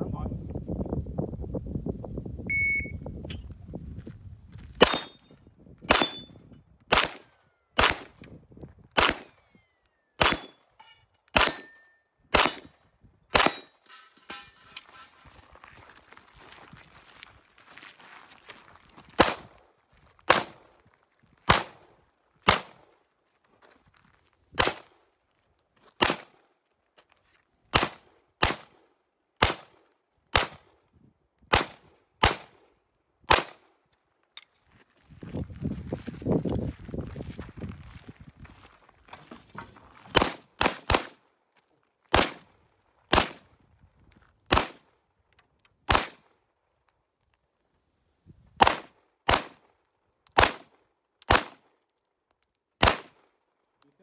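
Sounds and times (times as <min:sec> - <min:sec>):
pistol shots: 0:04.8 - 0:05.2, 0:05.9 - 0:08.2, 0:09.0 - 0:09.4, 0:10.2 - 0:10.6, 0:11.4 - 0:13.7, 0:20.3 - 0:20.6, 0:21.5 - 0:21.8, 0:22.4 - 0:22.8, 0:24.6 - 0:24.9, 0:26.0 - 0:26.3, 0:27.7 - 0:28.8, 0:29.4 - 0:29.7, 0:30.3 - 0:30.6, 0:31.5 - 0:32.6, 0:33.3 - 0:33.6, 0:40.2 - 0:41.2, 0:42.1 - 0:42.4, 0:43.1 - 0:43.4, 0:44.5 - 0:44.8, 0:45.9 - 0:46.2, 0:48.6 - 0:49.6, 0:50.3 - 0:51.6, 0:52.8 - 0:53.2.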